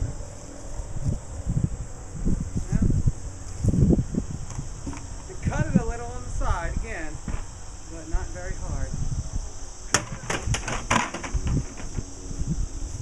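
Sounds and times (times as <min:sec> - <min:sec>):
high insect drone: 0:00.0 - 0:13.0
knocks and clatters: 0:09.9 - 0:12.0.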